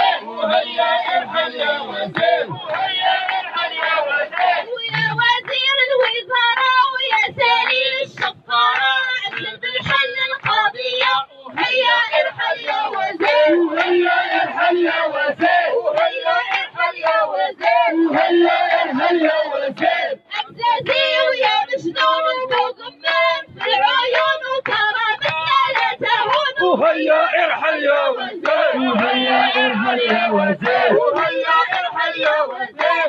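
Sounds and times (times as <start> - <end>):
woman chanting through loudspeaker: 0.0 - 33.0.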